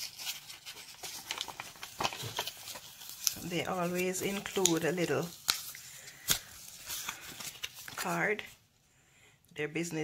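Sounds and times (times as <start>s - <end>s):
bubble wrap rustling: 0.0s - 8.6s.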